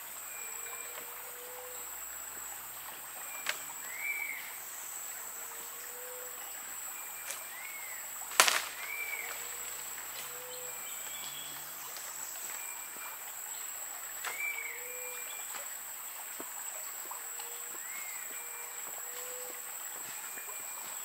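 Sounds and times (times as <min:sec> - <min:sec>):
sharp snap: 0:08.3 - 0:09.0.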